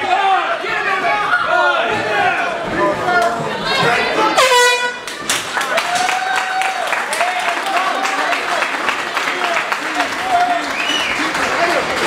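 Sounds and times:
crowd voices: 0:00.0 - 0:12.0
air horn blast: 0:04.3 - 0:05.0.

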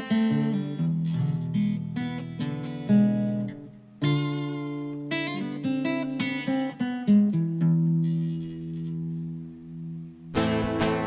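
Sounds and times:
rock band sustained low note: 0:10.2 - 0:11.0.

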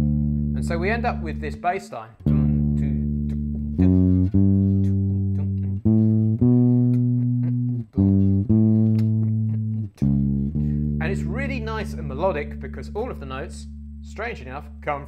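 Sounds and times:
electric bass line: 0:00.0 - 0:15.0.

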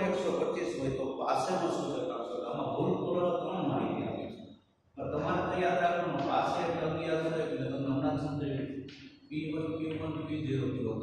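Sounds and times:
man speaking sing-song: 0:09.3 - 0:11.0.

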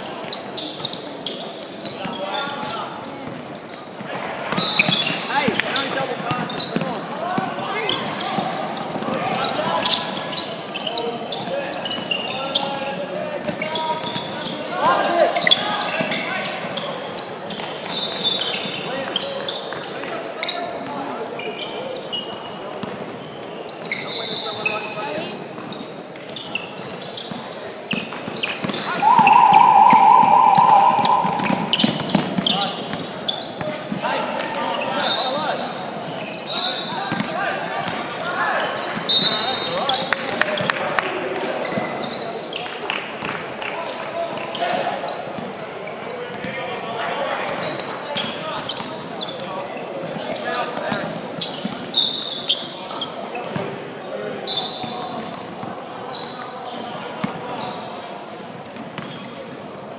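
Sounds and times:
voices echoing in hall: 0:00.0 - 0:59.9
sneaker squeaks: 0:00.2 - 0:33.8, 0:50.3 - 0:53.6, 0:54.4 - 0:59.7
loud warbling buzzer: 0:29.0 - 0:32.1.

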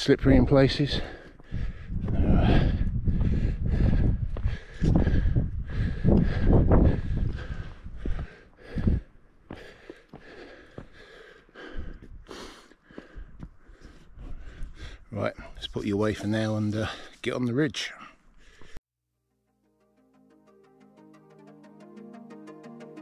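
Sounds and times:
wind buffeting microphone: 0:00.9 - 0:09.1
person breathing: 0:00.9 - 0:15.6, 0:18.0 - 0:18.8.

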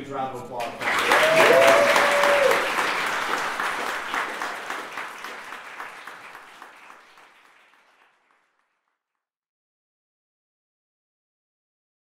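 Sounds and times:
audience applauding: 0:00.6 - 0:08.9.

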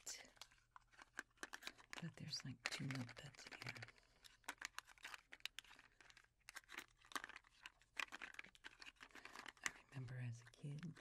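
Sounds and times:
cardboard box crinkling: 0:00.0 - 0:11.0.

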